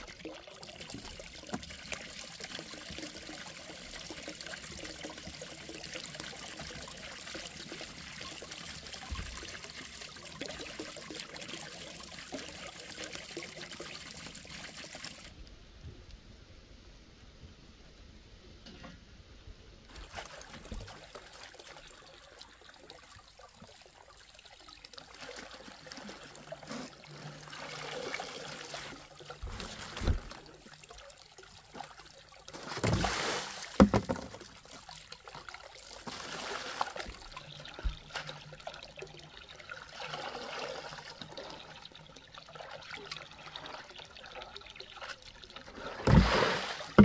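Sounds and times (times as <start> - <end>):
water trickling into basin: 0.0 - 15.4, 19.9 - 45.9.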